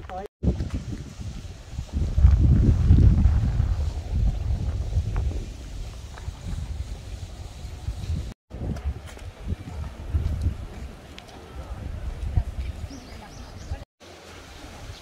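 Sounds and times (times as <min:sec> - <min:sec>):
wind buffeting microphone: 0:00.4 - 0:13.8.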